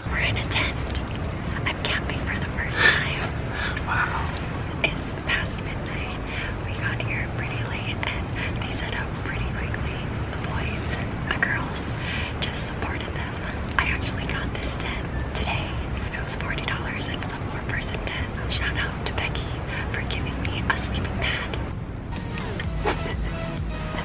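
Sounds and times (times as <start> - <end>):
man whispering: 0.0 - 9.8
low steady hum: 0.0 - 24.0.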